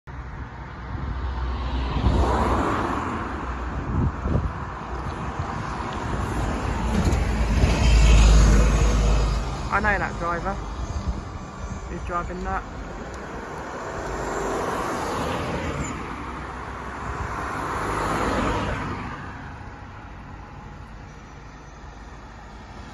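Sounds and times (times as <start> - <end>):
low rumble of traffic: 0.1 - 22.9
car passing close by: 1.1 - 10.0, 13.1 - 19.6.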